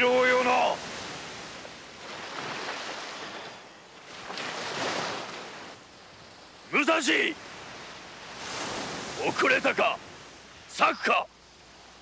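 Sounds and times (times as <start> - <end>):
sea water washing: 0.0 - 11.2.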